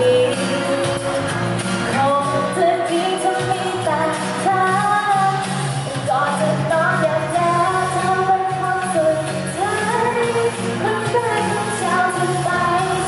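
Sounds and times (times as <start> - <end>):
woman singing into microphone: 0.0 - 1.3, 1.9 - 13.0
backing music: 0.0 - 13.0.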